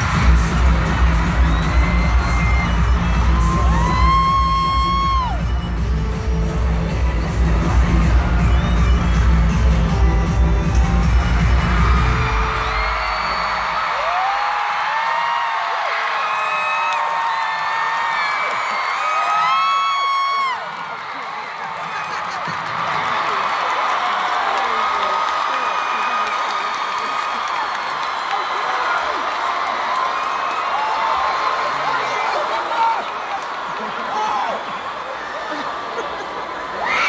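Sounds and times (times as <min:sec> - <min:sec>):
pop music with heavy bass beat: 0:00.0 - 0:12.9
audience screaming and cheering: 0:00.0 - 0:37.0.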